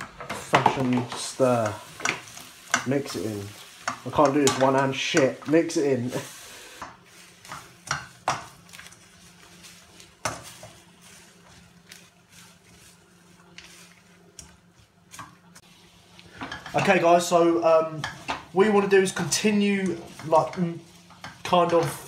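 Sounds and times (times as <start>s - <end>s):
faint sizzling: 0.0s - 22.0s
spatula scraping wok: 0.0s - 22.0s.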